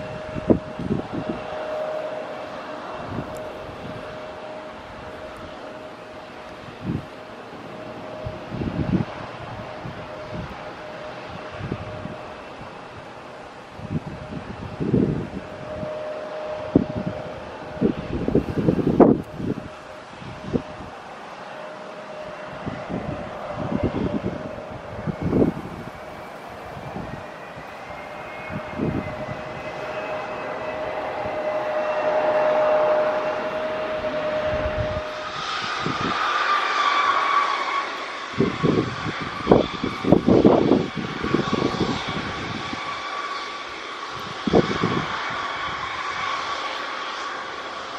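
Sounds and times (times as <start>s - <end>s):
wind buffeting microphone: 0.0s - 47.6s
jet engines whining: 0.0s - 47.9s.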